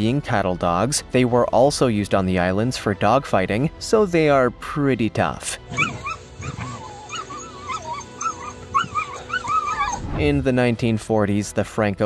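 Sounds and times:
dog whining: 0:05.7 - 0:10.1.

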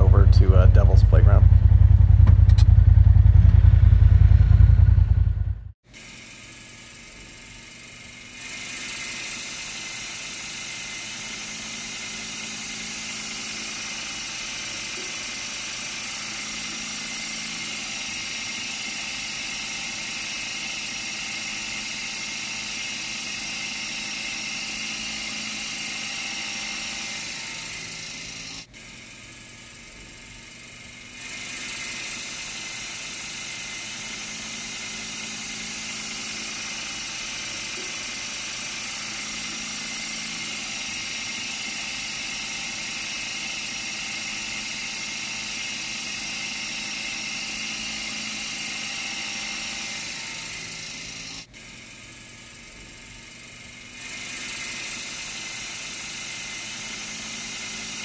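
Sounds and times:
loud low rumble: 0:00.0 - 0:05.7
off-road vehicle engine whir: 0:00.0 - 0:05.8.

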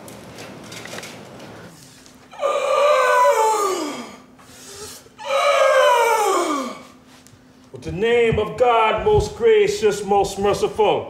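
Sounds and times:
person wailing: 0:02.3 - 0:04.2, 0:05.2 - 0:06.9.

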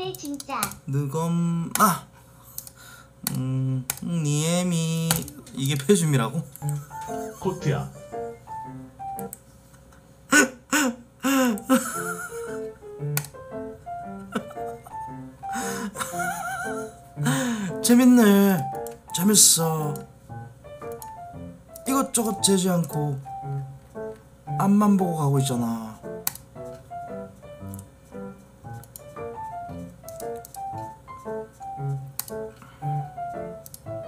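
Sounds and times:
simple tune of short notes: 0:06.6 - 0:09.4, 0:16.7 - 0:34.0.

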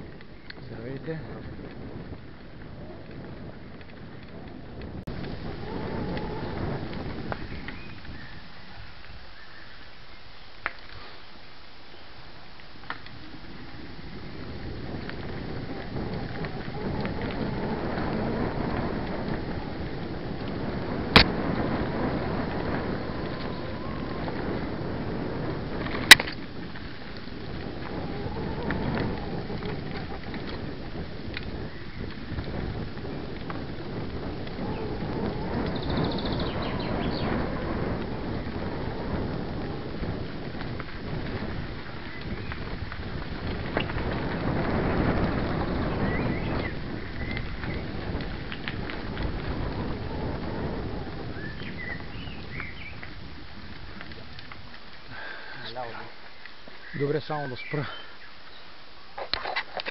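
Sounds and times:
wind buffeting and rattle: 0:00.0 - 0:09.7, 0:12.2 - 0:59.9.

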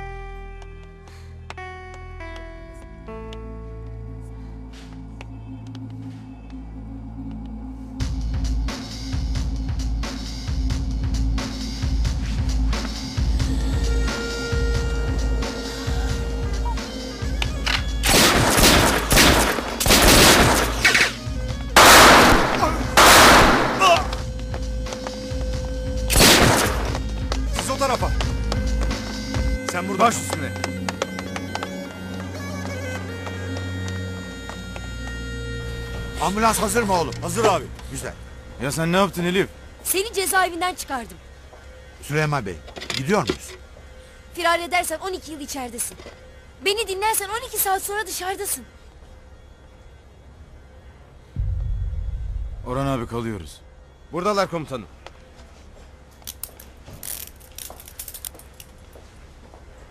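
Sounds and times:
dramatic soundtrack music: 0:00.0 - 0:42.4, 0:51.3 - 0:54.4
gunfire bursts: 0:18.0 - 0:21.1, 0:21.8 - 0:24.0, 0:26.1 - 0:26.9.

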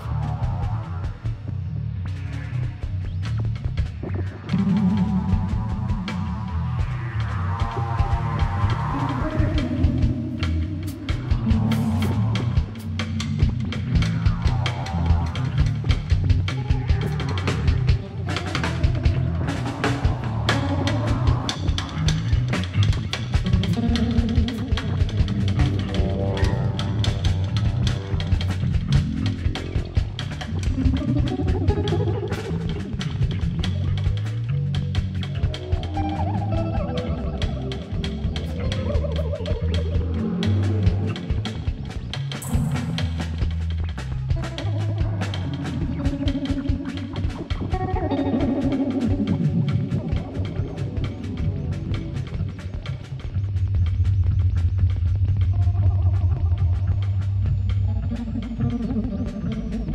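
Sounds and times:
electric guitar: 0:00.0 - 0:59.9
rock band playing: 0:00.0 - 0:59.9
drum kit beat: 0:02.7 - 0:59.9.

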